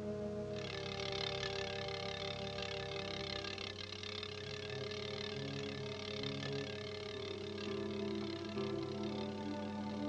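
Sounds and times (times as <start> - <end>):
roulette ball whirring rattle: 0.6 - 10.0
orchestral film music: 5.0 - 10.0.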